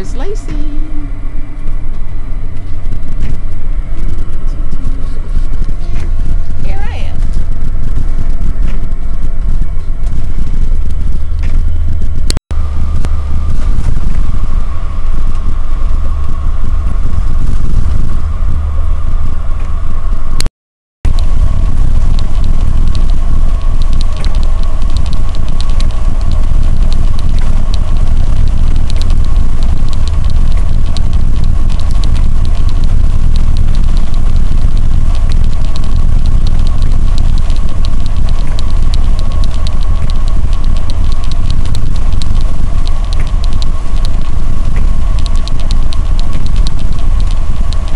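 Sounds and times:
steady whine: 0.0s - 20.5s, 21.1s - 47.9s
vehicle engine and road rumble: 0.0s - 47.9s
faint small ticks: 21.1s - 47.9s.

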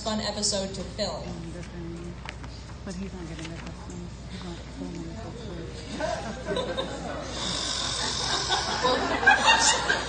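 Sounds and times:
audience laughter: 5.8s - 10.0s.

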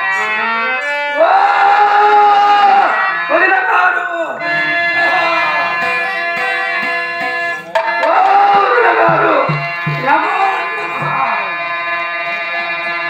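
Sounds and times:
harmonium chords: 0.0s - 13.0s
person singing: 4.4s - 11.6s
low hand-drum strokes: 5.0s - 11.5s.

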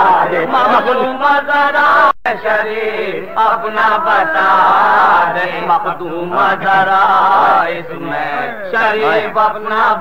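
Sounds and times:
man chanting melodic recitation: 2.6s - 10.0s.

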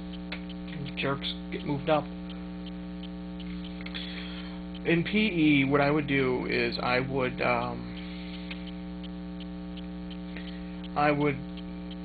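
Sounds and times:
faint ticks: 0.0s - 5.2s, 6.9s - 12.0s
electrical mains hum: 0.0s - 12.0s.

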